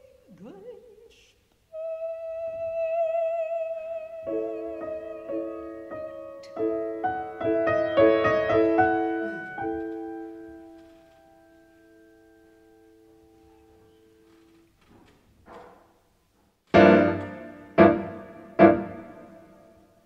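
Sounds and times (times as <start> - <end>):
piano chords: 4.2 - 14.3, 16.7 - 20.0.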